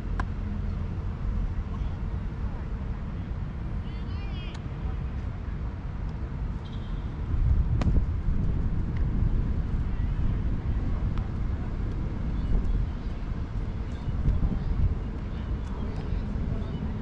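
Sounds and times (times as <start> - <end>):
wind rumbling on microphone: 4.7 - 17.0.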